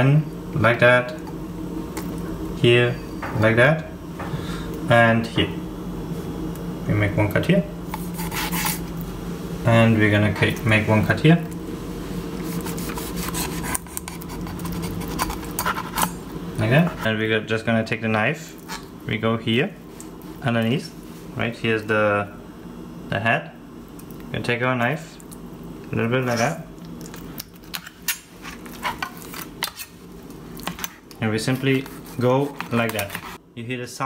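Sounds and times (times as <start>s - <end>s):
knife scraping fish scales: 7.9s - 8.9s, 12.4s - 16.2s, 31.5s - 33.4s.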